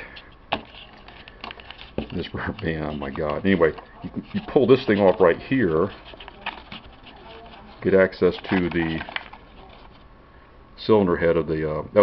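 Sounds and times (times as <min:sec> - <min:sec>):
faint handling noise: 0:00.0 - 0:10.2.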